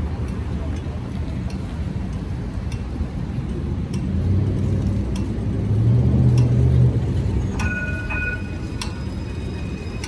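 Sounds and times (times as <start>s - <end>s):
vehicle engine rumble: 0.0s - 10.0s
crossing signal ticking: 5.0s - 10.0s.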